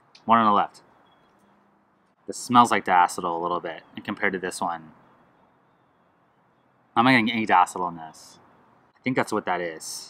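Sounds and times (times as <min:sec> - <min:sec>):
man speaking: 0:00.2 - 0:00.9, 0:02.2 - 0:05.0, 0:06.9 - 0:08.4, 0:09.0 - 0:10.0.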